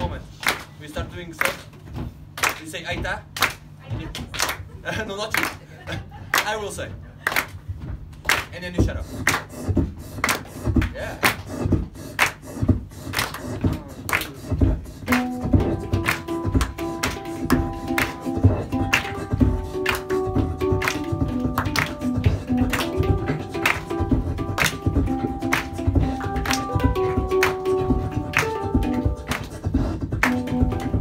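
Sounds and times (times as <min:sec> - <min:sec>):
beatboxing into a microphone: 0:08.5 - 0:31.0
hang drum ringing notes: 0:14.6 - 0:31.0.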